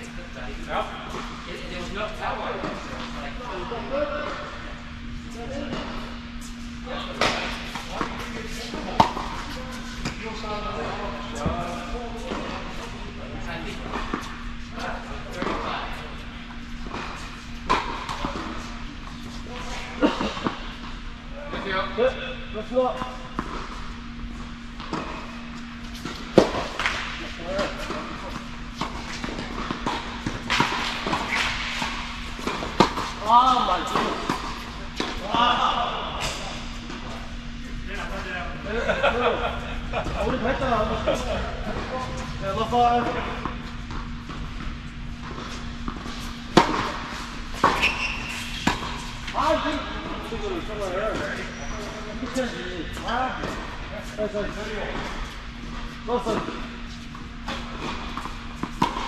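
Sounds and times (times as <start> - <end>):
steady low hum: 0.0 - 59.0
tennis balls hit by rackets: 7.1 - 10.3, 23.3 - 37.3, 41.6 - 49.4, 55.3 - 59.0.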